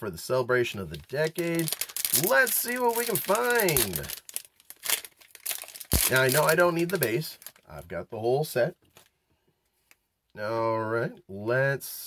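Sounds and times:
foil wrapper tearing and crinkling: 0.9 - 7.7.

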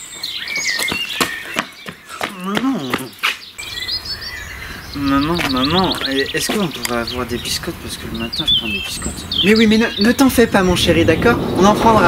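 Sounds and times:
birds chirping and whistling: 0.0 - 12.0
sharp bird ticks: 0.3 - 10.3.

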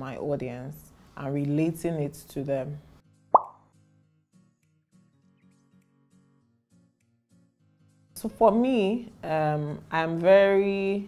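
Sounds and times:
soft background music: 0.1 - 11.0
rising bloop pop: 3.3 - 3.6.

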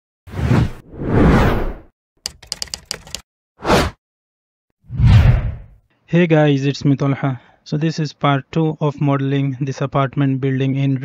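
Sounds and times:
sharp clicks: 2.2 - 3.2
whooshes: 4.9 - 5.8.

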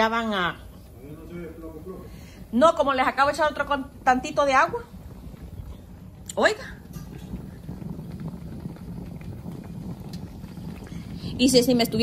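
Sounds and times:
steamer pot low rumble: 0.0 - 12.0
simmering water crackle: 4.3 - 12.0.

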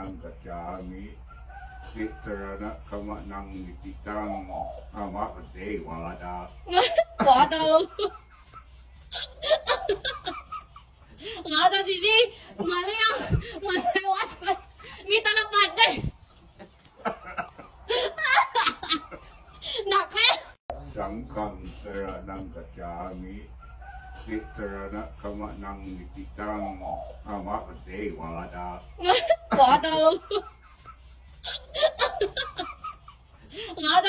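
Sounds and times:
breathy laughter: 6.7 - 11.4, 16.6 - 19.9, 29.0 - 34.0.

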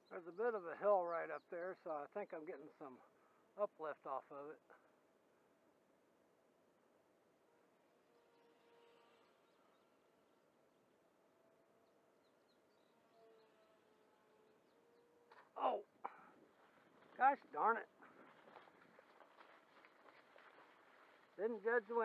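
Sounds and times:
model plane motor whine: 7.4 - 10.5, 11.3 - 15.5
man exclaiming: 15.6 - 16.2.

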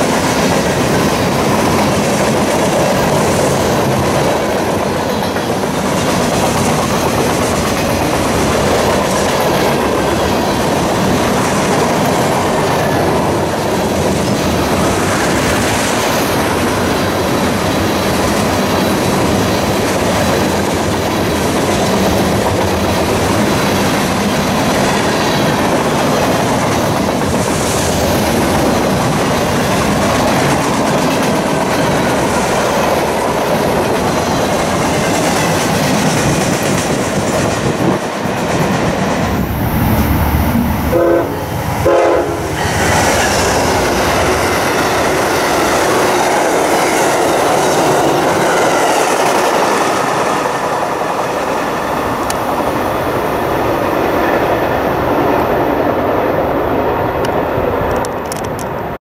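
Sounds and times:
train wheels rumbling on rails: 0.0 - 59.0
locomotive horn blasts: 40.9 - 42.6.

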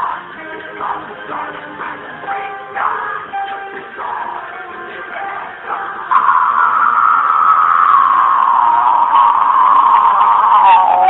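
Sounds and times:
man shrieking: 6.1 - 11.0.

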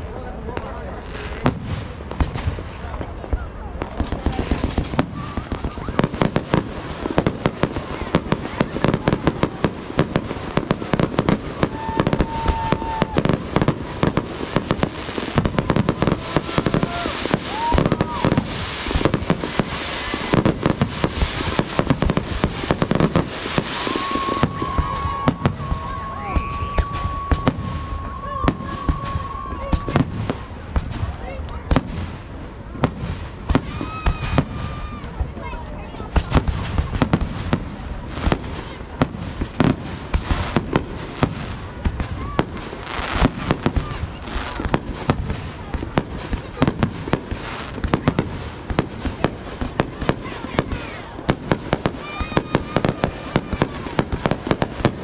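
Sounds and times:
fireworks bursting: 0.0 - 55.0
fireworks crackling: 0.0 - 55.0.

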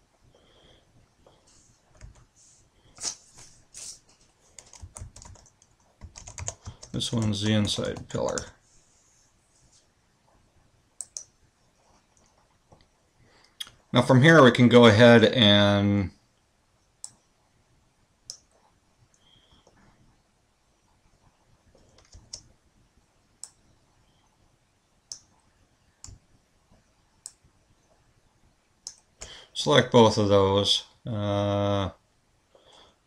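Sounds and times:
computer keyboard keys clicking: 4.6 - 8.5.

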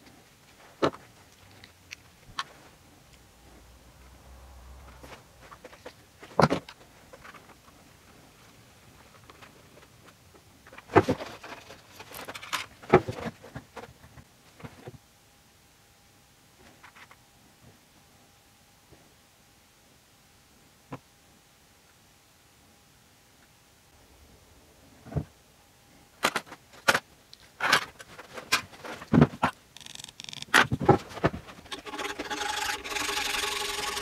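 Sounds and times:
short scraping: 29.8 - 34.0.

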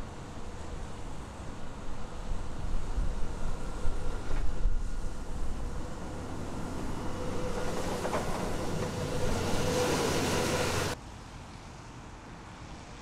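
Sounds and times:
road traffic rumble and hiss: 0.0 - 13.0
vehicle passing: 3.2 - 11.0.

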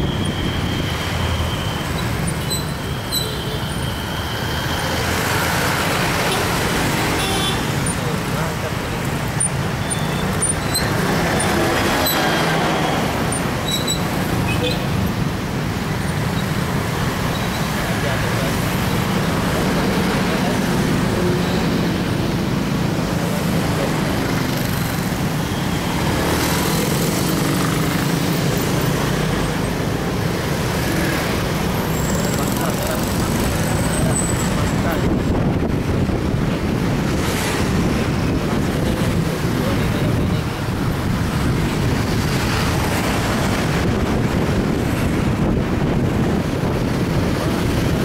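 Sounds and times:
low engine and road rumble: 0.0 - 48.0
road traffic cars and motorcycles: 0.0 - 48.0.

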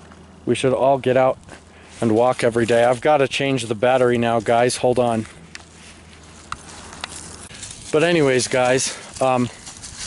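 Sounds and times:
man speaking: 0.4 - 1.4, 2.0 - 5.3, 7.9 - 9.6.

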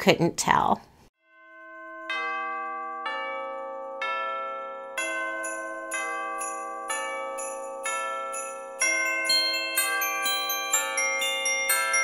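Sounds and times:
chime-like bell notes: 1.2 - 12.0.

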